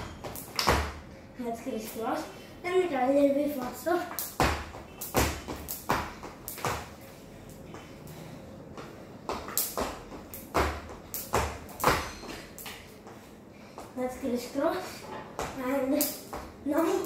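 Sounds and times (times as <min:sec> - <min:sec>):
feet landing on tiled floor: 0:00.0 - 0:01.0, 0:04.2 - 0:06.9, 0:08.7 - 0:12.9
skipping rope slapping floor: 0:00.0 - 0:01.0, 0:03.6 - 0:06.9, 0:08.7 - 0:12.9, 0:15.4 - 0:17.0.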